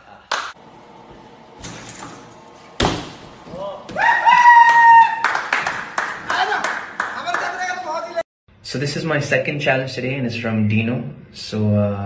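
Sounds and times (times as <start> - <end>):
thud landing on crash mats: 2.8 - 4.0
sharp claps or slaps: 5.2 - 7.5.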